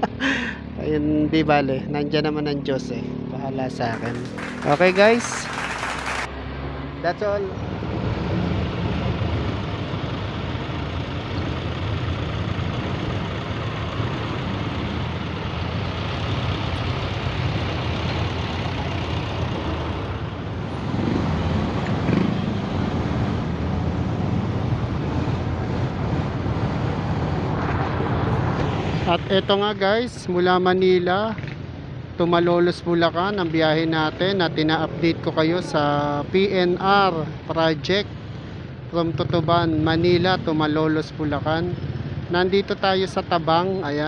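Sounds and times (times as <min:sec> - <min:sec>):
other vehicles running: 0:00.0 - 0:44.0
road and wind rumble: 0:00.0 - 0:44.0
motorcycle engine: 0:02.0 - 0:29.5.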